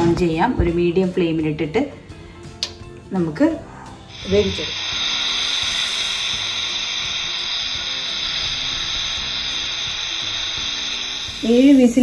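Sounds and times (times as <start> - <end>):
pressure cooker whistling: 4.1 - 12.0.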